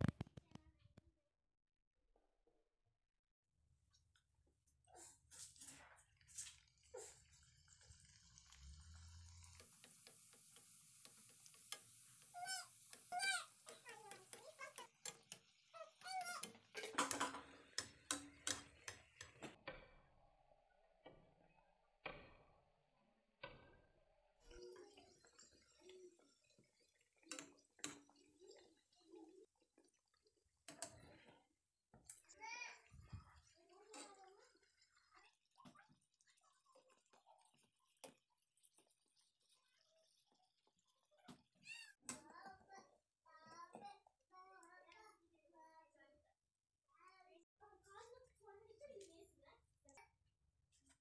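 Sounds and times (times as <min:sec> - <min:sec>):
hot oil splashing: 0:05.4 - 0:22.6, 0:23.4 - 0:42.2
metal spoon tapping frying pan: 0:16.2 - 0:19.6.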